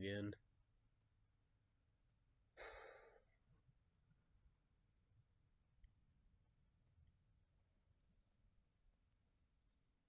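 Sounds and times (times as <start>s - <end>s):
man sighing: 2.6s - 3.2s.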